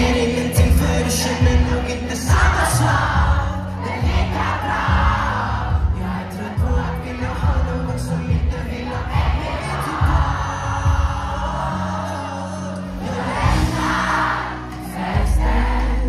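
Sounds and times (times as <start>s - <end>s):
crowd noise: 0.0s - 16.0s
live pop music through speakers: 0.0s - 16.0s.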